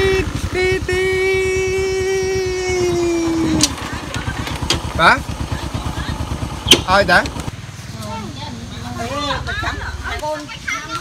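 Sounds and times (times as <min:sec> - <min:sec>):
small engine running: 0:00.0 - 0:09.9.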